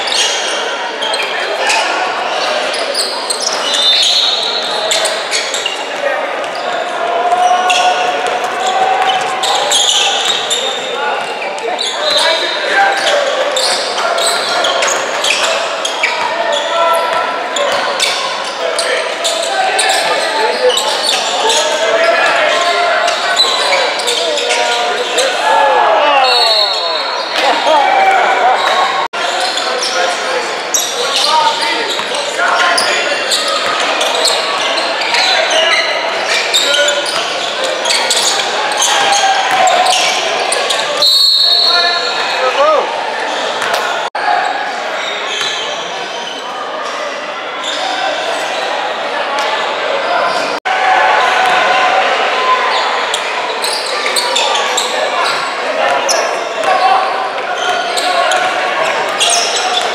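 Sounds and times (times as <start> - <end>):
sneaker squeaks: 0.0 - 25.4, 26.1 - 27.7, 28.5 - 44.1, 45.0 - 47.0, 47.6 - 48.7, 52.7 - 59.9.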